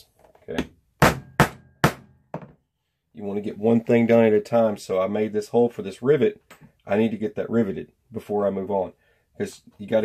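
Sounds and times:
hammer striking leather punch: 0:01.0 - 0:02.5.

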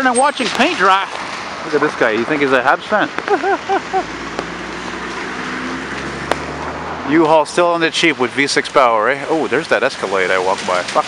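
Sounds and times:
cars driving on wet pavement: 0:00.0 - 0:11.0.

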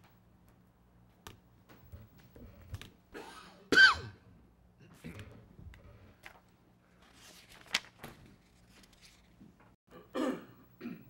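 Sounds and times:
person coughing: 0:03.2 - 0:04.2, 0:09.9 - 0:11.0.

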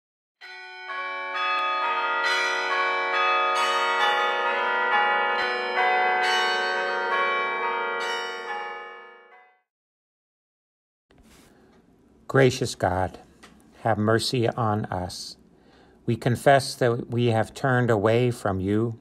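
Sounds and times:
bells ringing: 0:00.4 - 0:09.7.

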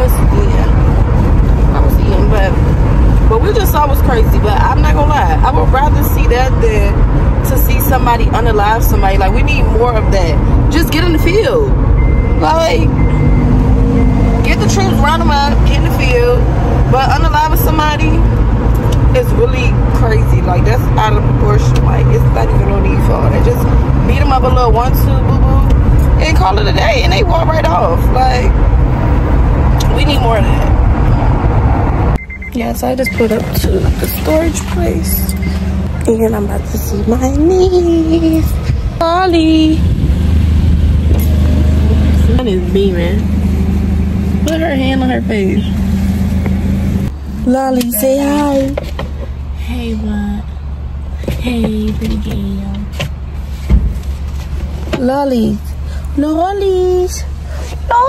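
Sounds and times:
car cabin rumble: 0:00.0 - 0:58.0
person talking: 0:32.6 - 0:39.8, 0:47.4 - 0:48.8.

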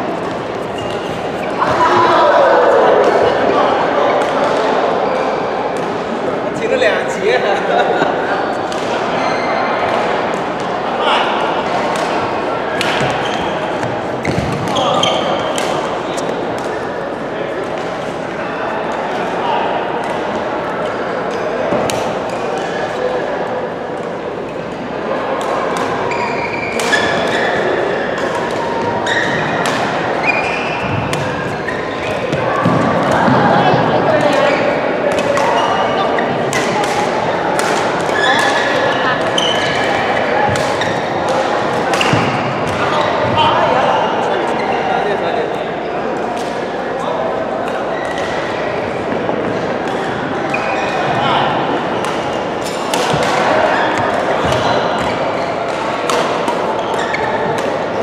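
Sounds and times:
babble of echoing voices: 0:00.0 - 0:58.0.

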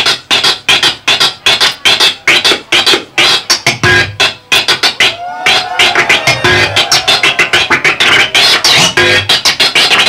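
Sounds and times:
music: 0:00.0 - 0:10.0
vinyl record scratching: 0:00.0 - 0:10.0.

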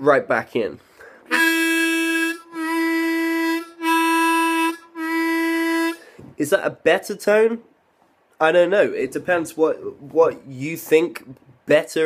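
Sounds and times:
harmonica playing single note: 0:01.3 - 0:06.1.

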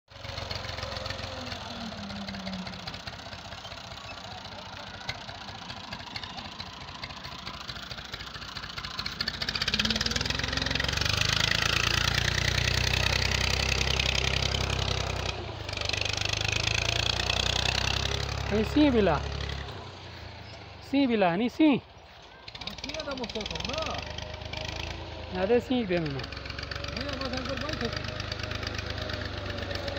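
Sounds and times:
tractor engine running: 0:00.1 - 0:29.9.

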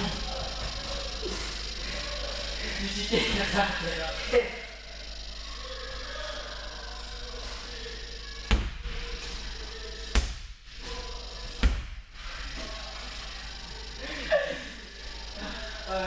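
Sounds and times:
heavy thumps: 0:08.5 - 0:09.2, 0:10.1 - 0:10.8, 0:11.6 - 0:12.2.

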